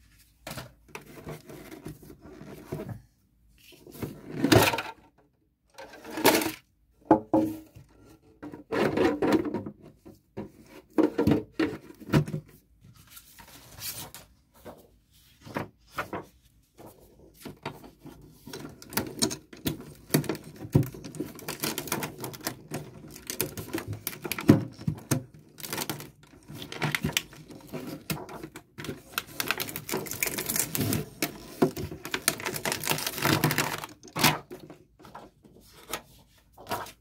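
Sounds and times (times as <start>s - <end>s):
loud plastic crack: 18.8s - 34.6s
shredder crunching plastic: 19.8s - 28.1s, 28.9s - 34.5s.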